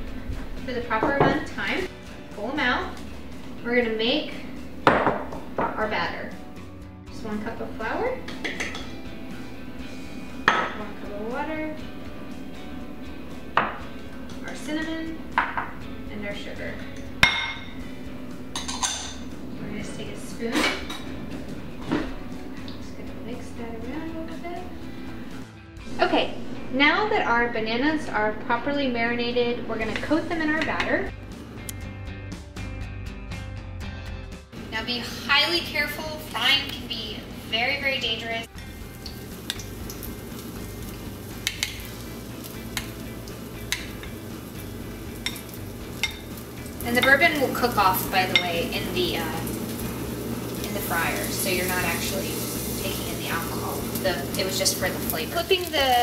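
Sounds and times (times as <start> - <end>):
soft background melody: 0.0 - 56.0.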